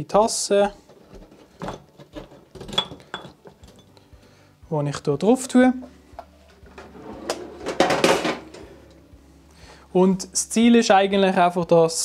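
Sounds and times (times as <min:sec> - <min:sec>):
kitchenware clattering and scraping: 0:00.8 - 0:03.9, 0:06.4 - 0:09.0.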